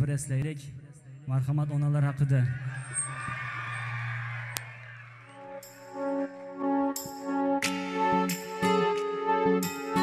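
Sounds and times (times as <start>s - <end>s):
crowd cheering: 2.3s - 6.4s.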